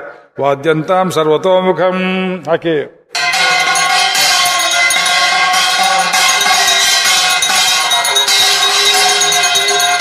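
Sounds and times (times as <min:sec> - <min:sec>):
bells ringing: 0:03.1 - 0:10.0
bright jingling: 0:03.2 - 0:10.0.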